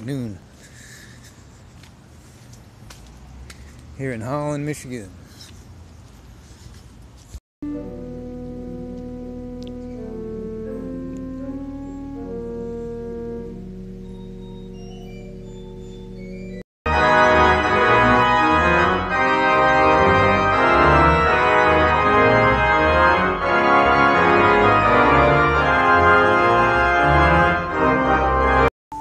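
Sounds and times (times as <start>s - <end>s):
church pipe organ playing: 7.6s - 28.7s.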